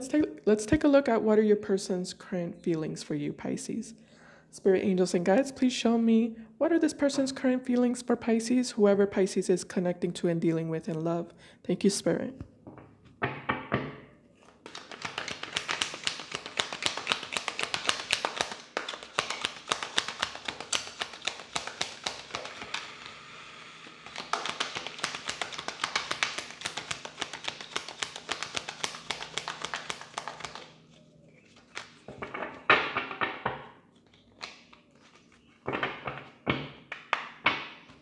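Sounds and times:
cards being shuffled: 14.4 - 23.3, 23.9 - 32.6, 33.8 - 36.3.

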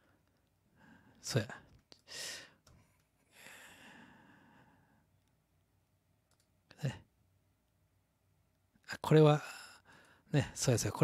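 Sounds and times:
faint clicks: 6.3 - 6.5.

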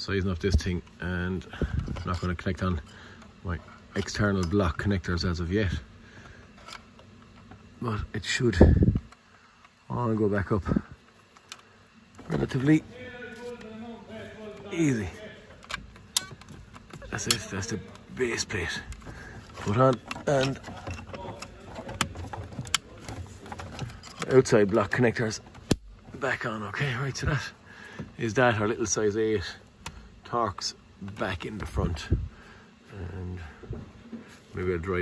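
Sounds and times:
handling noise: 11.0 - 26.5.

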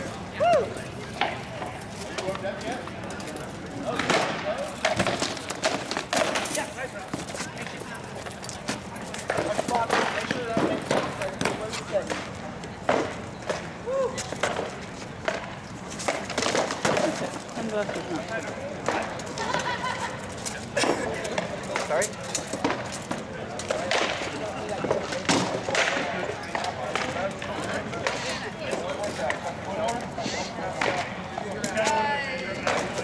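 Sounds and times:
crowd chatter: 0.0 - 33.0.

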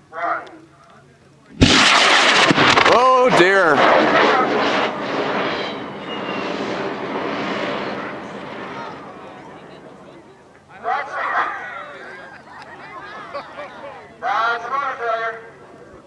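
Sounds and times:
rocket motor roaring: 1.6 - 10.3
spectators shouting: 7.7 - 9.8.

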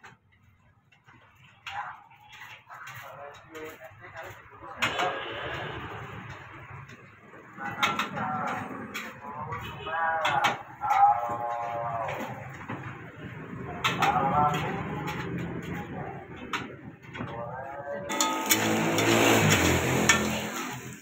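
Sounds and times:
people talking: 1.4 - 6.8, 7.6 - 20.7
metal spatula scraping in wok: 4.8 - 6.5, 18.1 - 21.0
food sizzling: 18.1 - 21.0.

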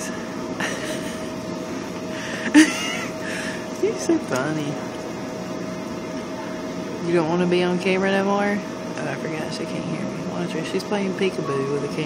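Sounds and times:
hood hair dryer blowing: 0.0 - 5.7
faint steady hum: 0.0 - 12.0.

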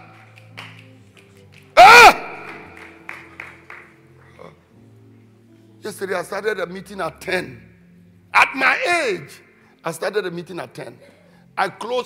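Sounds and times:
man shouting through sound system: 1.8 - 2.4, 8.4 - 9.3.

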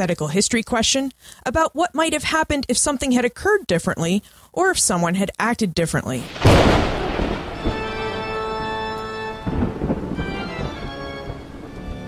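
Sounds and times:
thunder rumbling: 6.2 - 12.0
rain: 6.3 - 12.0
held organ-like chord: 7.4 - 12.0.

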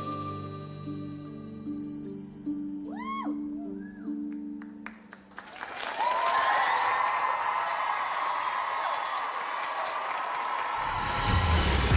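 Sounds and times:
whoops and screams: 2.9 - 4.1, 5.9 - 11.2
audience applause and cheering: 5.1 - 11.9.

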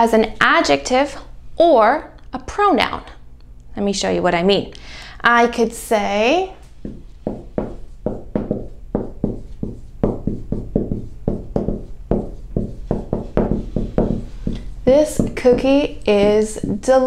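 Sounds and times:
marker writing on whiteboard: 6.8 - 17.0.

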